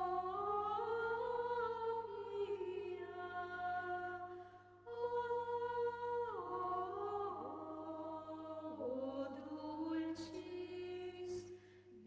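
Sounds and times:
women singing a hymn: 0.0 - 12.0.

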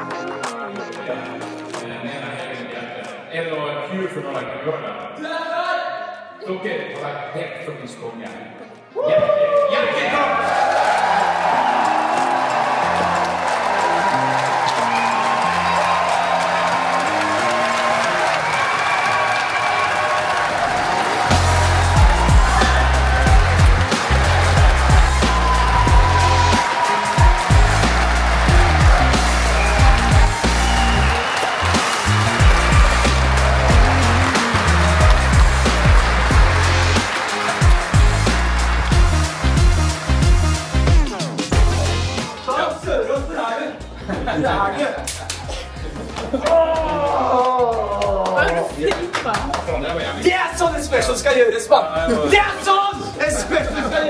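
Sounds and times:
music playing: 0.0 - 3.2, 10.0 - 54.0
audience applauding: 10.2 - 42.0, 46.4 - 50.0
heavy pulsing bass beat: 21.3 - 26.6, 27.2 - 42.2.

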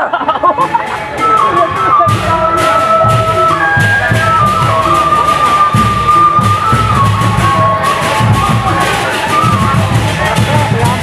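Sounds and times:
large drums beating: 0.1 - 11.0
wind instrument melody: 0.2 - 11.0.

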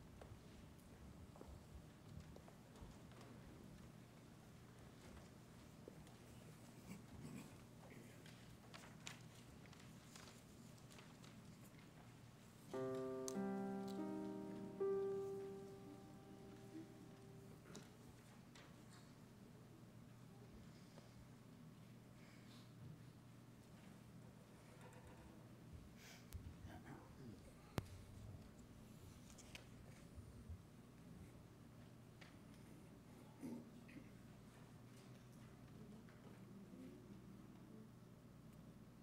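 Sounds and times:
faint low hum: 0.0 - 39.0
quiet room noise: 0.0 - 39.0
piano chords: 12.7 - 18.1.

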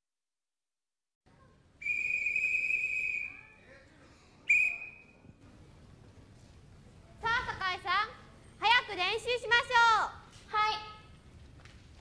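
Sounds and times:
whistle blasts: 1.8 - 3.7, 4.5 - 5.4.

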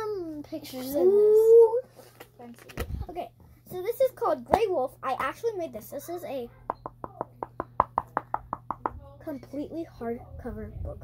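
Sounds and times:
knocking on hardcover book: 6.7 - 9.0.

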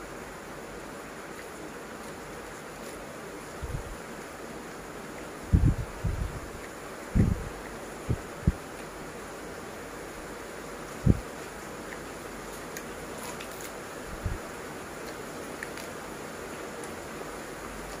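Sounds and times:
steady background hiss: 0.0 - 18.0
dull low thumps: 5.5 - 6.5, 7.1 - 7.5, 11.0 - 11.2.

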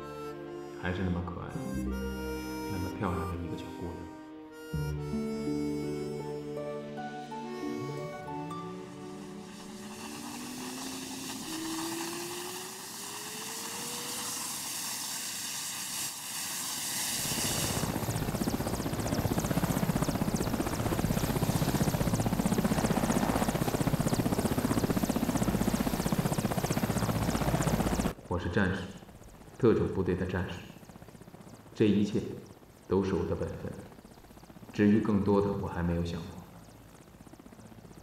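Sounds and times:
turbine whine rising: 5.0 - 28.2
helicopter rotor chop: 8.2 - 38.0.

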